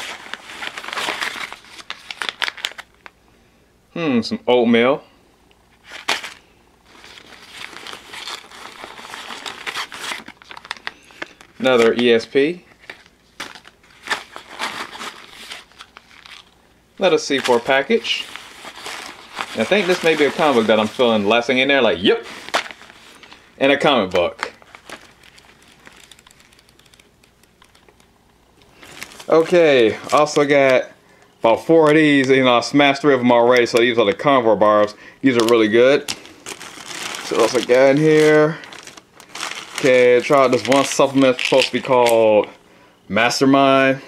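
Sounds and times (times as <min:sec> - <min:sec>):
packaging crinkling and rustling: 0:00.0 - 0:03.2, 0:05.7 - 0:42.6.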